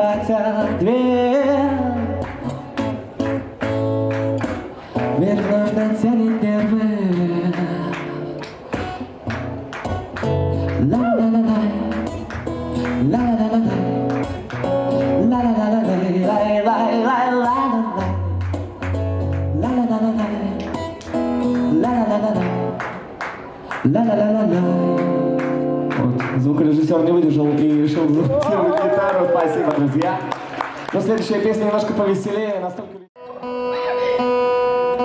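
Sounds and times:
man singing: 0:00.0 - 0:03.0, 0:04.9 - 0:08.4, 0:10.8 - 0:18.4, 0:19.4 - 0:23.0, 0:23.8 - 0:29.3
strummed acoustic guitar: 0:00.0 - 0:26.6, 0:33.2 - 0:35.0.

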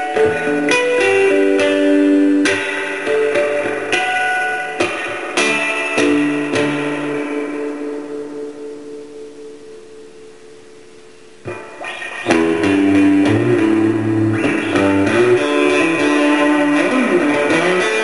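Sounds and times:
electric guitar chords: 0:00.0 - 0:18.0.

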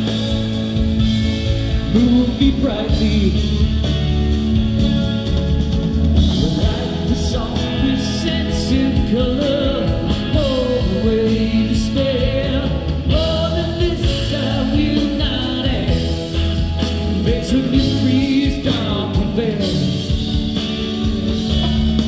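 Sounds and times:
live rock band playing: 0:00.0 - 0:22.0
person singing: 0:01.8 - 0:04.0, 0:06.1 - 0:22.0.

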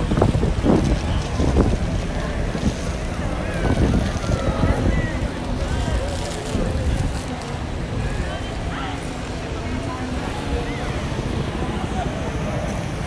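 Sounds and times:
wind buffeting microphone: 0:00.0 - 0:08.7
indistinct voices of passers-by: 0:00.0 - 0:13.0.

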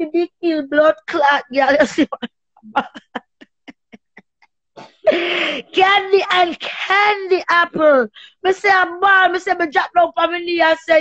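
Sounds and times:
person laughing: 0:02.7 - 0:04.2, 0:04.8 - 0:05.8.

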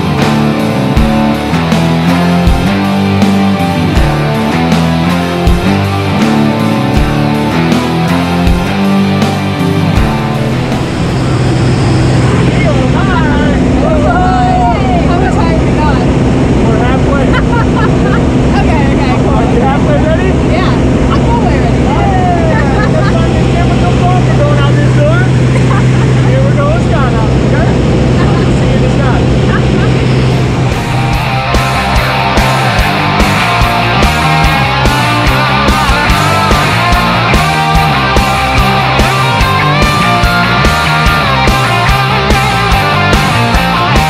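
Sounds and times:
music: 0:00.0 - 0:44.0
light aircraft engine droning: 0:10.0 - 0:32.4
people talking: 0:12.3 - 0:30.2
people laughing: 0:16.9 - 0:19.0, 0:21.0 - 0:24.6, 0:25.3 - 0:26.6, 0:28.1 - 0:30.5.

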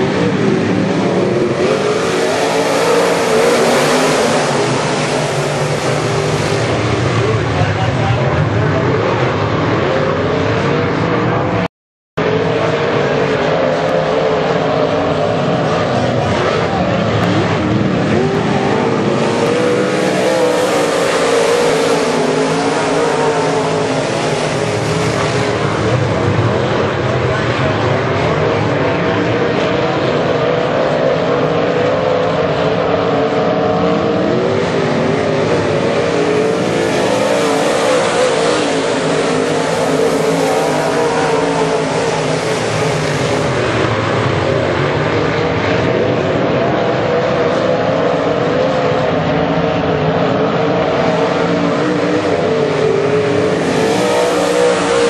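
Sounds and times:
race car engines roaring: 0:00.0 - 0:55.0.

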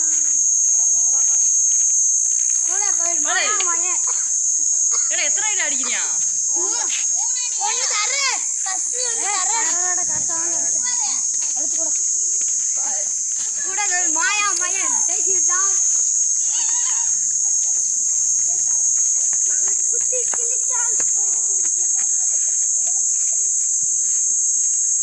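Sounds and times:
insects chorus: 0:00.0 - 0:25.0
children's voices: 0:02.6 - 0:12.0, 0:12.6 - 0:18.8, 0:19.4 - 0:21.6.

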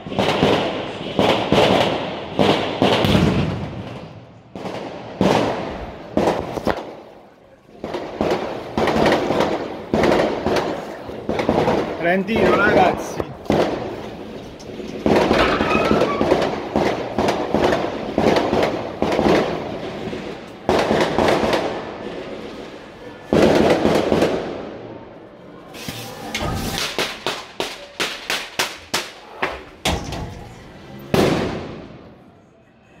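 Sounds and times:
loud firework booms: 0:00.0 - 0:07.0, 0:07.8 - 0:14.1, 0:15.0 - 0:22.3, 0:31.1 - 0:32.1
fireworks crackling and banging: 0:00.0 - 0:25.1, 0:25.7 - 0:32.2.

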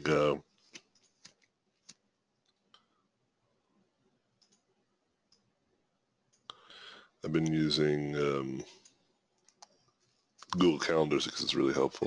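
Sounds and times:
computer mouse clicks: 0:04.4 - 0:04.7, 0:08.8 - 0:09.8.

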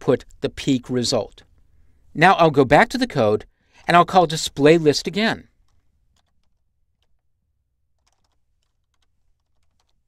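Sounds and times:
faint keyboard typing: 0:05.5 - 0:07.3, 0:07.9 - 0:10.0.

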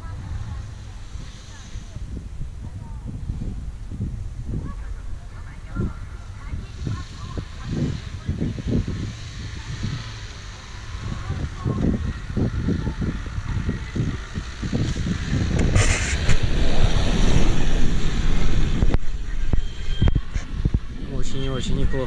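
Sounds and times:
diesel engine working hard: 0:04.5 - 0:21.2.

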